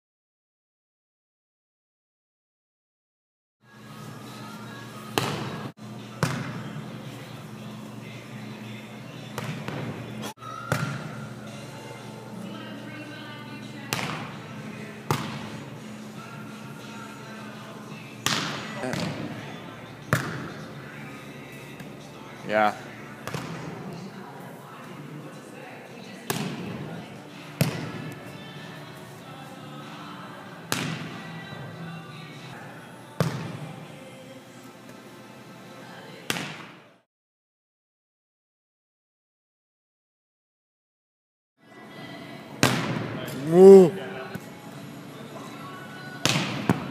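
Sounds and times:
volleyball smacks echoing: 0:06.2 - 0:06.6, 0:15.1 - 0:15.5, 0:18.2 - 0:19.3, 0:42.6 - 0:43.2, 0:46.2 - 0:46.9
steady low hum: 0:11.0 - 0:36.1
hands slapping volleyball: 0:18.2 - 0:19.2, 0:46.2 - 0:46.9.

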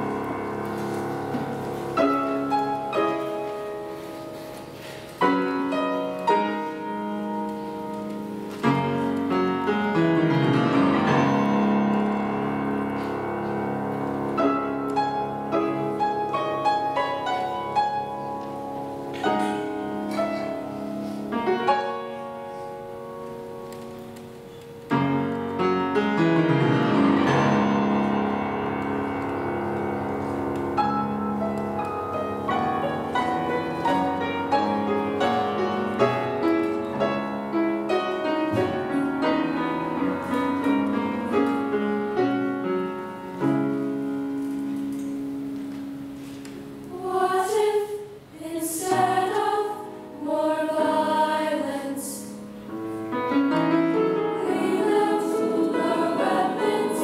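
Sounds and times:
grand piano: 0:00.0 - 0:57.0
mixed choir singing: 0:37.8 - 0:40.4, 0:46.8 - 0:52.4, 0:54.1 - 0:57.0.

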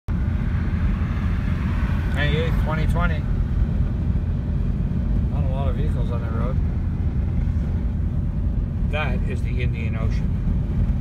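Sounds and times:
car road and engine rumble: 0:00.1 - 0:11.0.

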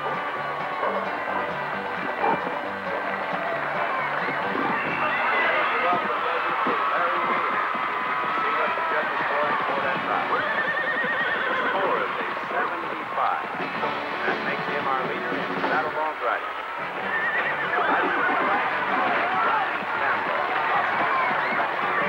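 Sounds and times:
crowd hubbub: 0:00.0 - 0:22.0
horses whinnying: 0:00.0 - 0:22.0.

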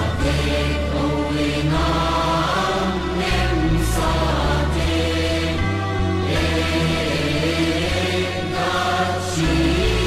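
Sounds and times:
choir chanting a hymn: 0:00.0 - 0:10.0
low bass notes: 0:00.0 - 0:10.0.

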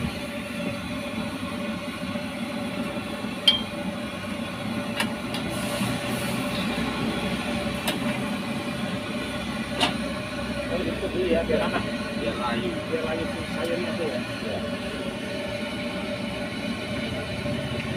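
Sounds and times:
broth boiling in wok: 0:00.0 - 0:17.9.

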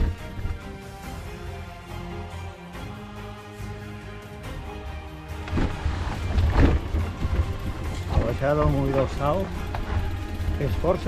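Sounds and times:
background music: 0:00.0 - 0:11.0
mountain bike on rocky trail: 0:05.4 - 0:11.0.

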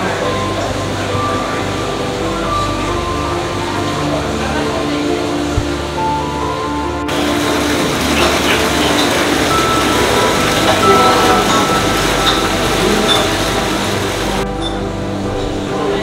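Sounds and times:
background music with held tones: 0:00.0 - 0:16.0
water pouring into drain: 0:07.1 - 0:14.5.

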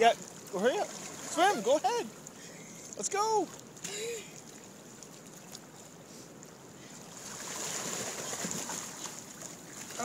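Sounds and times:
lake water moving: 0:00.0 - 0:10.0.

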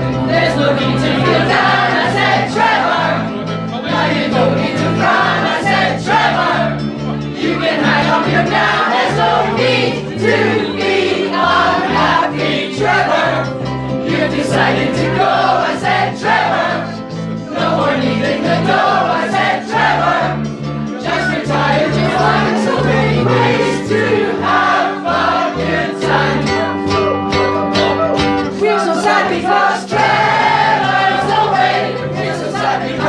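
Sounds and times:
bass line: 0:00.0 - 0:28.8
ukuleles strumming: 0:00.0 - 0:33.0
voices singing together: 0:00.0 - 0:33.0.

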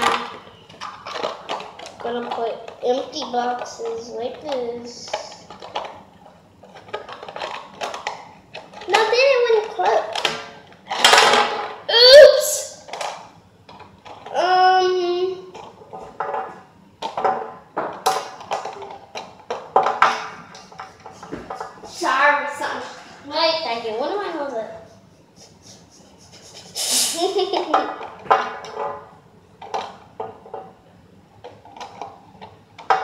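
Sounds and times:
plastic toys clicking on table: 0:00.0 - 0:06.0, 0:06.6 - 0:11.4.

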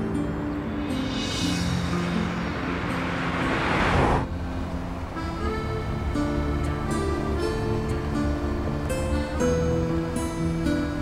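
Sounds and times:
background music with held notes: 0:00.0 - 0:03.2, 0:04.2 - 0:11.0
car driving past: 0:00.2 - 0:06.6.

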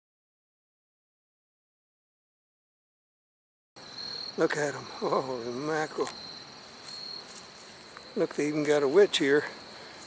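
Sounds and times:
crickets chirping: 0:03.8 - 0:10.0.

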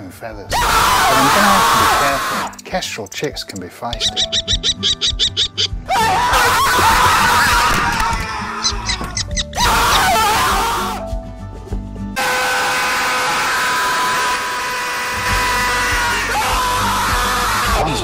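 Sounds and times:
background music: 0:00.0 - 0:18.0
man screaming: 0:00.5 - 0:02.6, 0:05.9 - 0:09.0, 0:09.6 - 0:11.0, 0:12.2 - 0:18.0.

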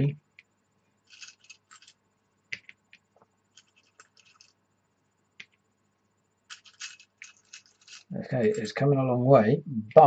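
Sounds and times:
wooden game pieces clicking: 0:01.1 - 0:01.9, 0:03.6 - 0:04.5, 0:06.5 - 0:08.6
wooden game pieces scratching: 0:01.1 - 0:02.0, 0:02.6 - 0:04.6, 0:06.5 - 0:08.7.

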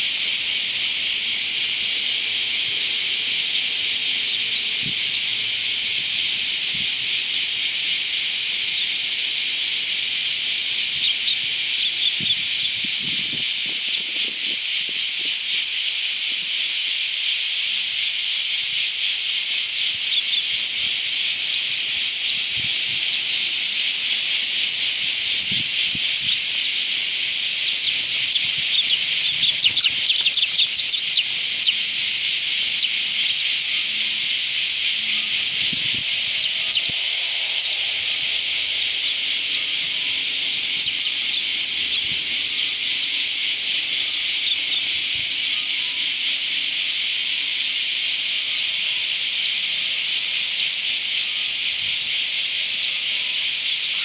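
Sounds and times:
cicada chorus drone: 0:00.0 - 0:54.0.

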